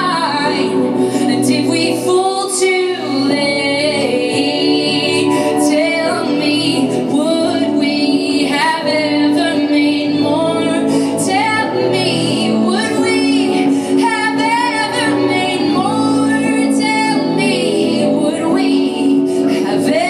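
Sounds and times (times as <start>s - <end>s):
live band with electric guitars: 0.0s - 20.0s.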